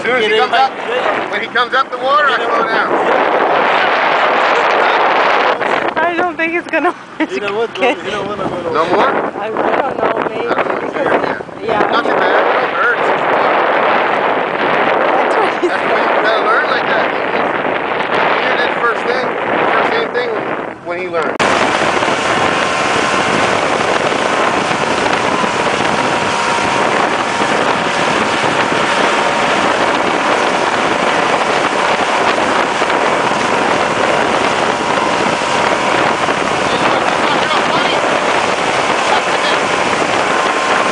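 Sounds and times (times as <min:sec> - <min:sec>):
outboard motor drone: 0:00.0 - 0:40.9
water rushing past: 0:00.0 - 0:40.9
wind on microphone: 0:00.0 - 0:40.9.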